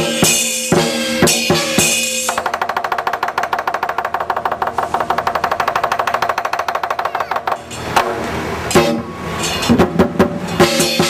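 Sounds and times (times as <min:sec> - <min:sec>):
drum and cymbals roll: 0:00.0 - 0:11.0.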